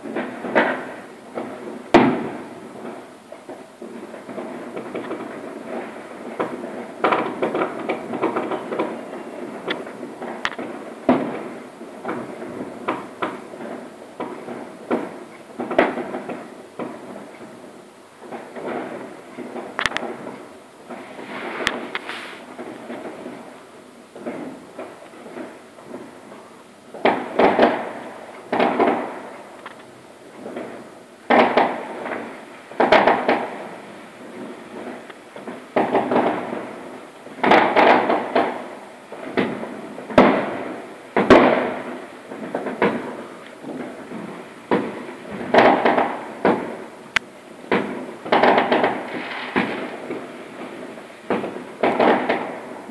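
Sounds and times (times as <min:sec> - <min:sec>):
muffled fireworks bangs and crackles: 0:00.0 - 0:52.9
rattling firework volleys: 0:00.0 - 0:52.9.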